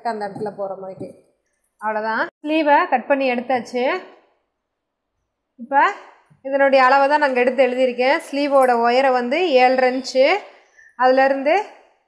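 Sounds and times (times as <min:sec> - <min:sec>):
woman speaking: 0:00.0 - 0:01.2, 0:05.6 - 0:11.8.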